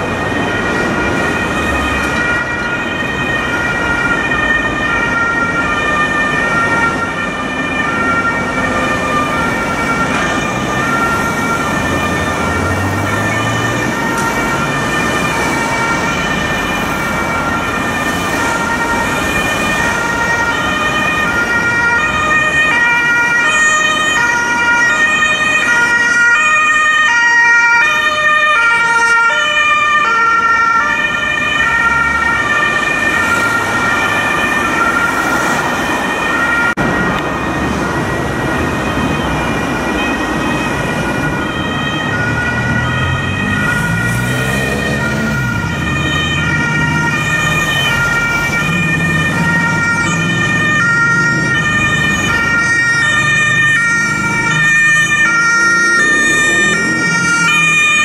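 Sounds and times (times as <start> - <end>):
ambulance two-tone siren: 0.0 - 58.0
city traffic noise: 0.0 - 58.0.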